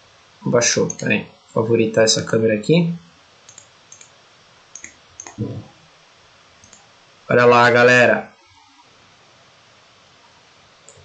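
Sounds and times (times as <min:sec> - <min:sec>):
computer mouse clicks: 0:00.9 - 0:01.1, 0:03.4 - 0:05.4, 0:06.6 - 0:06.9
low vocal murmur: 0:05.3 - 0:05.8.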